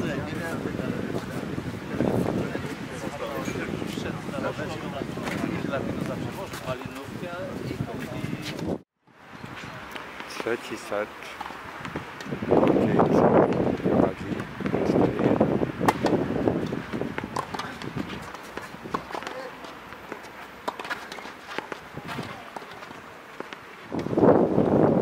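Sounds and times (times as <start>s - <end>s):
people talking: 0.0s - 8.6s, 9.6s - 11.4s, 12.6s - 15.5s, 19.0s - 19.8s, 21.9s - 23.2s
tennis ball struck by rackets: 15.8s - 24.1s.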